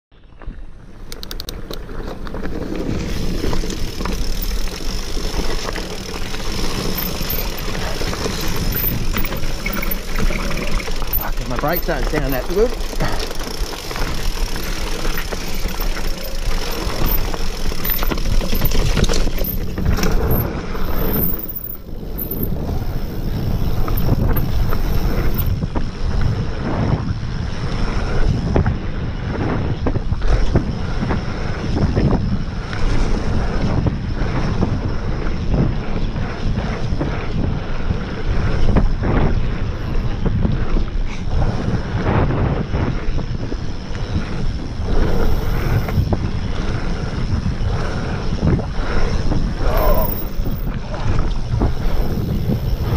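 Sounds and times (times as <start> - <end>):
wind rushing over microphone: 0.1 - 52.9
bike knocking and rattling: 0.3 - 52.9.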